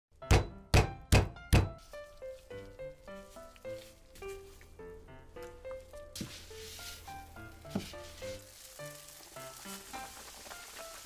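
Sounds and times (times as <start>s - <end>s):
background music with held tones: 0.1s - 11.0s.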